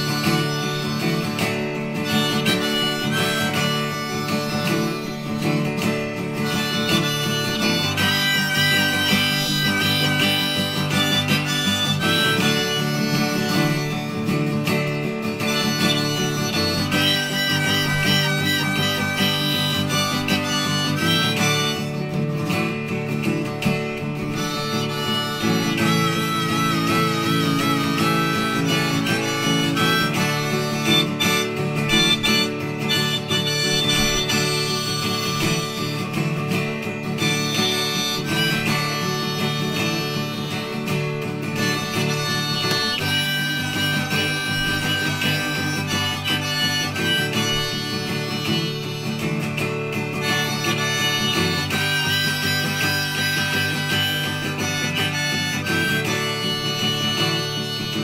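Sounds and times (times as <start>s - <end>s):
acoustic guitars: 0.0s - 58.0s
harmonica melody: 0.0s - 58.0s.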